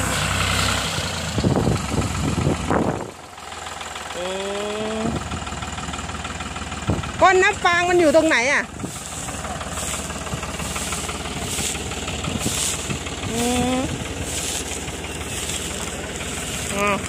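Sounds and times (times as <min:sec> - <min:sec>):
tractor engine: 0:00.0 - 0:17.0.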